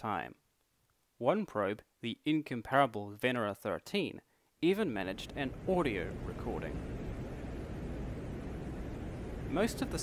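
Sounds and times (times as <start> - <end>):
faint hiss: 0.0 - 10.0
wind rushing: 5.4 - 10.0.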